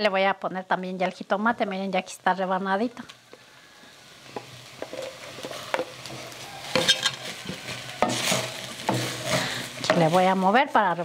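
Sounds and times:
meat sizzling: 0:00.0 - 0:11.0.

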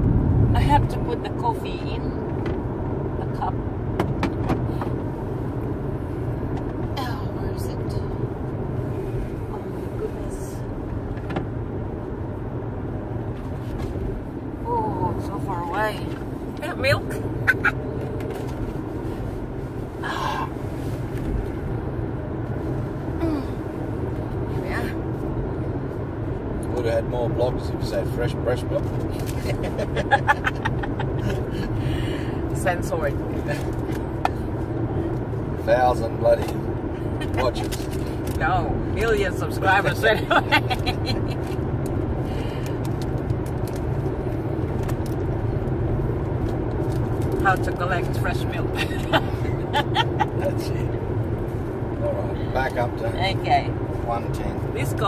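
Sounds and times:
car road and engine noise: 0:00.0 - 0:55.0.

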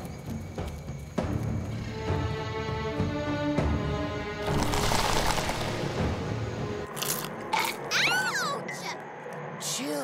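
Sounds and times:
background music: 0:00.0 - 0:10.0
popcorn munching crunches: 0:06.9 - 0:07.8.

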